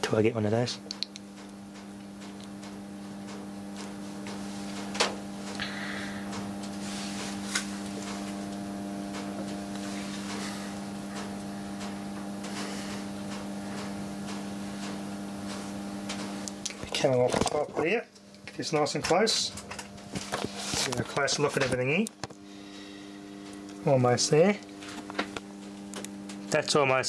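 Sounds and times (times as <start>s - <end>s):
electrical mains hum: 0.0s - 27.0s.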